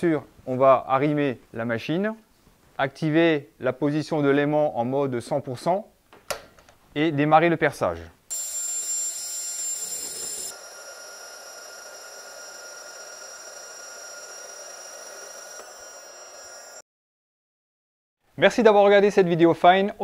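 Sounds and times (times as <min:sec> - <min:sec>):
core drill boring through steel: 0:08.3 - 0:16.8.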